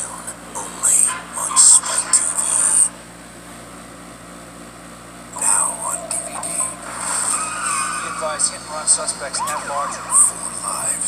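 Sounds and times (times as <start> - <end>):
tyres skidding squeal: 6.6 - 9.0.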